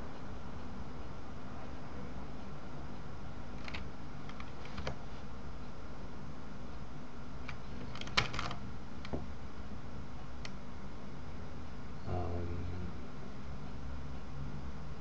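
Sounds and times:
steady low hum: 0:00.0 - 0:15.0
keyboard and mouse clicks: 0:03.6 - 0:05.0.

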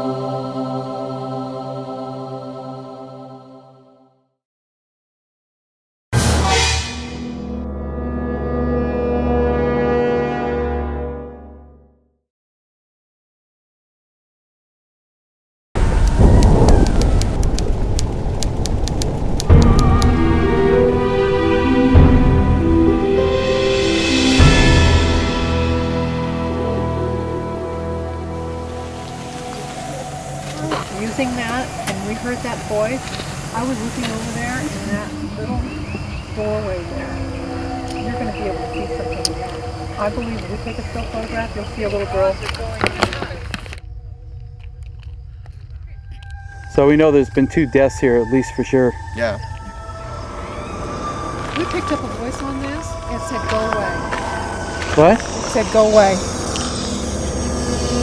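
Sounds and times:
loud rumbling with crackles: 0:15.8 - 0:21.0, 0:28.0 - 0:38.5
low rumble: 0:15.8 - 0:58.0
music with held tones: 0:19.4 - 0:31.6
hiss: 0:28.8 - 0:35.2.

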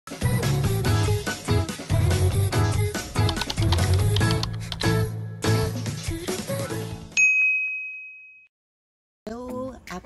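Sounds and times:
bright bell ding: 0:07.2 - 0:08.5.

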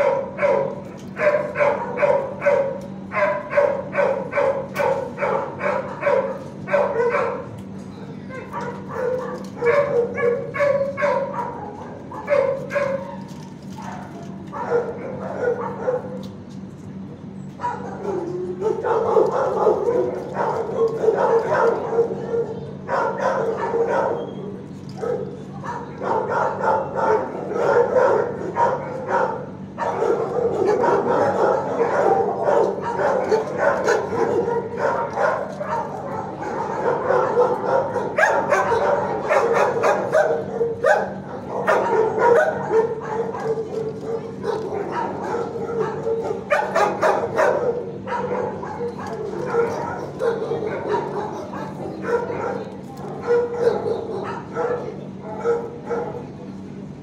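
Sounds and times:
many dogs barking and yipping: 0:00.0 - 0:16.6, 0:17.5 - 0:57.0
steady low hum: 0:00.0 - 0:57.0.

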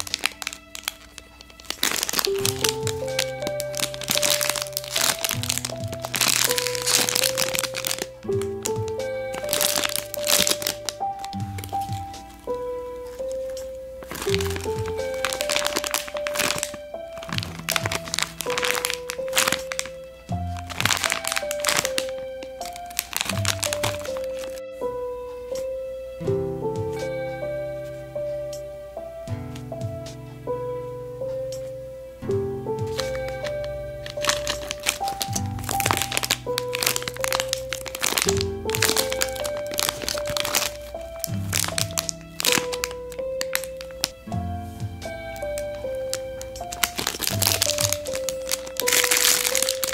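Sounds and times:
plastic packaging crackling: 0:00.0 - 0:24.6, 0:32.8 - 0:49.9
simple melody of held notes: 0:00.0 - 0:49.9
background music with bass: 0:24.6 - 0:34.1, 0:40.8 - 0:48.2.

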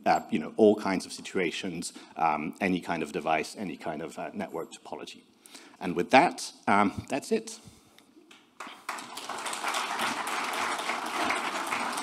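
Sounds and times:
audience applauding: 0:08.6 - 0:12.0.

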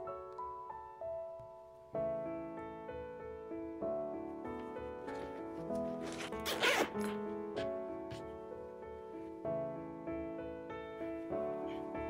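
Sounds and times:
soft piano music: 0:00.0 - 0:12.0
handbag zipper: 0:05.2 - 0:07.7.

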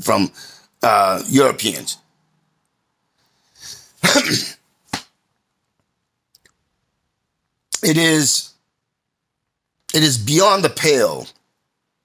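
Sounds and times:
man coughing: 0:04.0 - 0:04.6.

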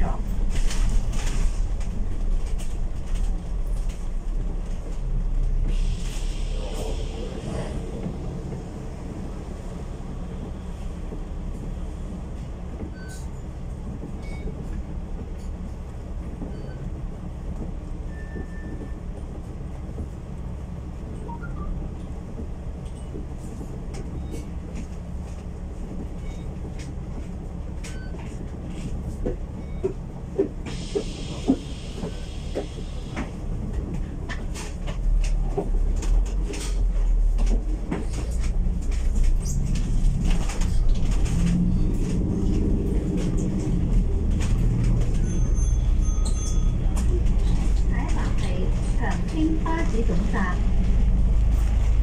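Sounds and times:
bus diesel engine running: 0:00.0 - 0:52.0.

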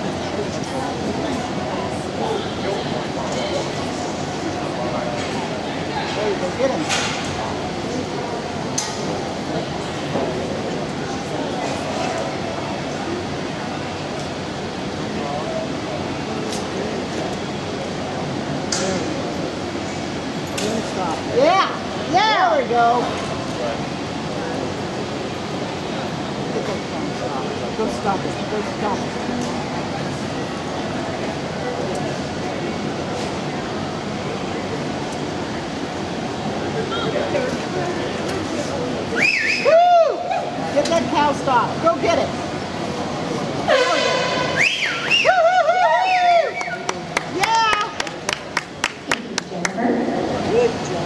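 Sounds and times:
faint indistinct voices: 0:00.0 - 0:51.0
indoor arena noise: 0:00.0 - 0:51.0.

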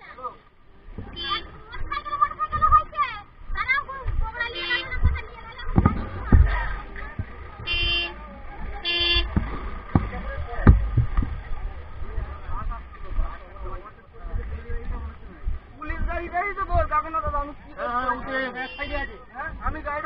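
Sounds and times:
crowd talking: 0:00.0 - 0:20.0
dull thumps: 0:00.8 - 0:20.0
vehicle horn toots: 0:01.1 - 0:01.6, 0:04.5 - 0:05.0, 0:07.6 - 0:08.2, 0:08.8 - 0:09.4, 0:18.4 - 0:19.2.

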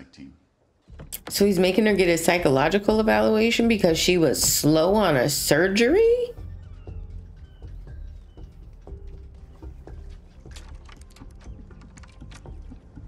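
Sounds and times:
low music drone: 0:01.9 - 0:13.0.

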